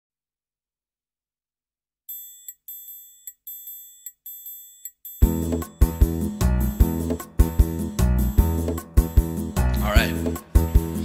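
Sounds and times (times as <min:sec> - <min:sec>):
repeating ringing notes: 0:02.1 - 0:06.2
drums and bass beat: 0:05.2 - 0:11.0.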